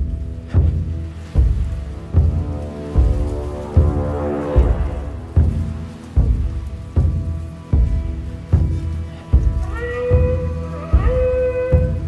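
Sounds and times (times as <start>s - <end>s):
deep slow pulse: 0.0s - 12.0s
held high notes: 1.2s - 7.8s
rising tone: 1.9s - 6.6s.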